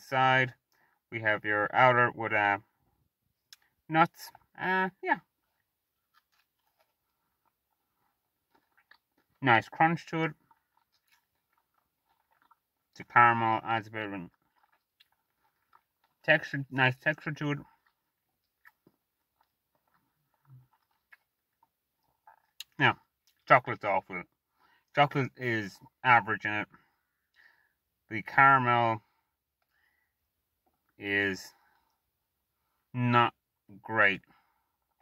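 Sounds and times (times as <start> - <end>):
person quietly chewing: 3.3 - 4.5, 5.2 - 23.5, 29.1 - 32.9.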